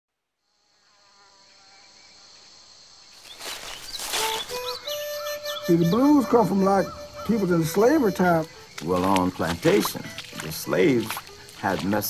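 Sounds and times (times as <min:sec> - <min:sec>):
crickets chirping: 0:00.3 - 0:12.0
bird calls: 0:03.2 - 0:12.0.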